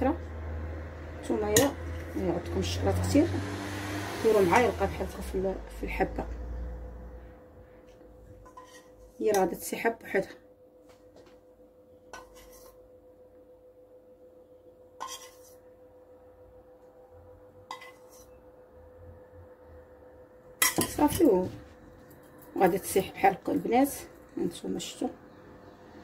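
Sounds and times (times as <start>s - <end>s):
metal spoon scraping saucepan: 8.4s - 9.6s, 12.1s - 12.8s, 15.0s - 15.6s, 17.7s - 18.4s, 20.6s - 21.4s
metal spoon clinking on dishware: 20.6s - 21.2s.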